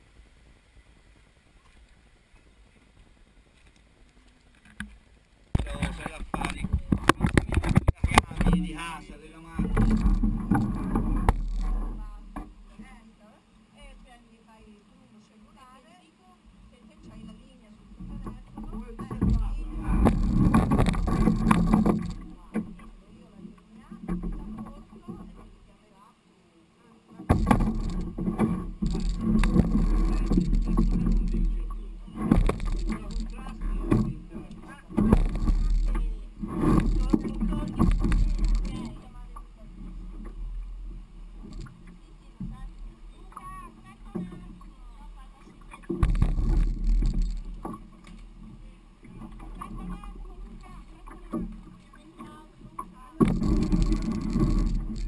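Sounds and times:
canoe hull scraping over stones: 5.6 - 13.1, 17.0 - 25.8, 27.1 - 55.0.

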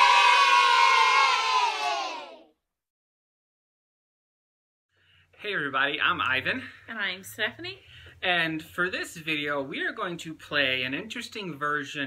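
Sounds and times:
crowd cheering: 0.0 - 2.5.

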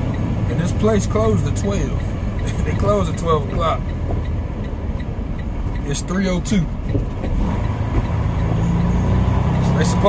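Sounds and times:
diesel engine droning: 0.0 - 10.0
man talking: 0.5 - 3.9, 5.8 - 6.8, 9.6 - 10.0.

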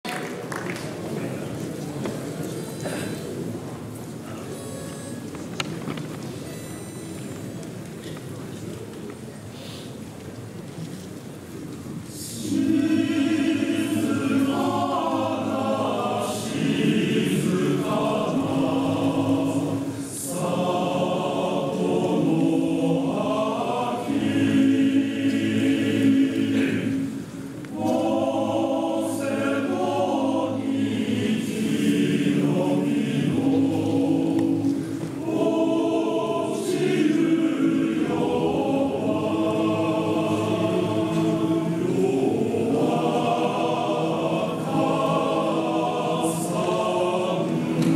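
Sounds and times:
male choir singing: 12.1 - 47.9.

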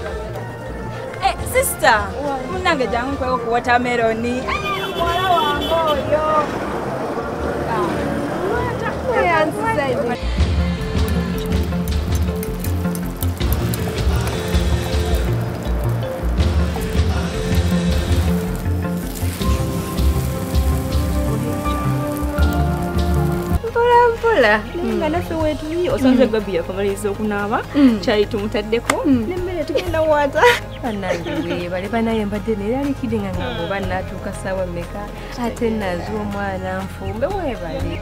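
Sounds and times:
background music with pulsing bass: 9.2 - 38.0
flatbread sizzling in oil: 11.4 - 23.6
woman speaking: 28.3 - 38.0.

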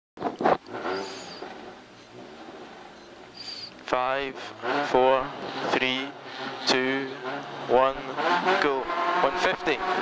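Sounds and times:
car engine idling: 0.6 - 9.5.

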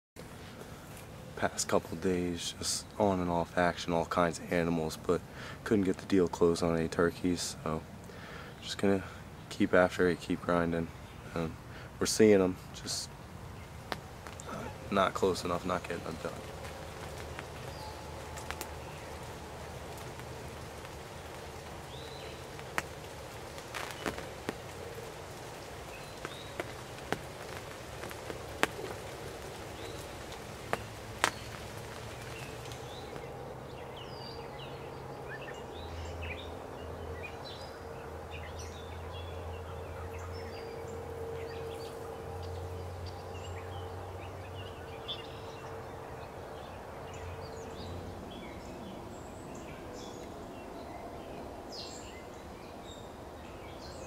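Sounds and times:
small birds chirping: 0.4 - 54.0.

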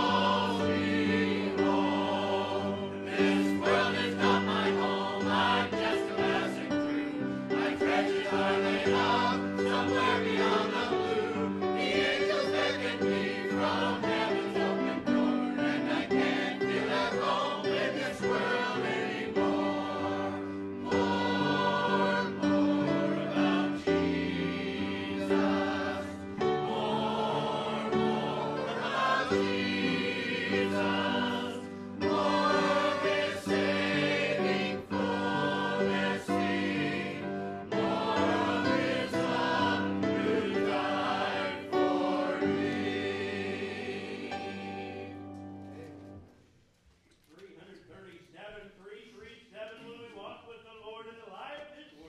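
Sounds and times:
church choir singing hymn: 0.0 - 46.3.

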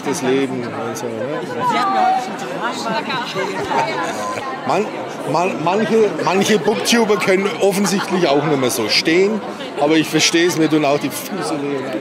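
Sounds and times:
people chatting in large hall: 0.0 - 12.0
man speaking: 4.3 - 11.7.

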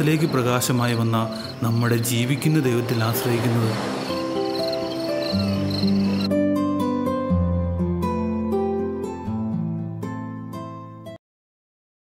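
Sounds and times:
crickets chirping: 0.0 - 6.3
music with long held notes: 0.0 - 11.2.

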